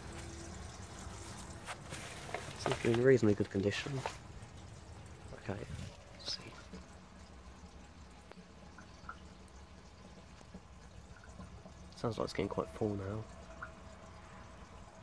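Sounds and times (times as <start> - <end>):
water trickling into cistern: 0.0 - 15.0.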